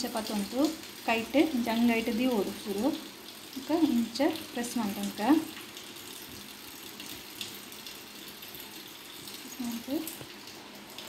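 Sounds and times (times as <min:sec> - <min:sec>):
hot oil sizzling: 0:00.0 - 0:11.0.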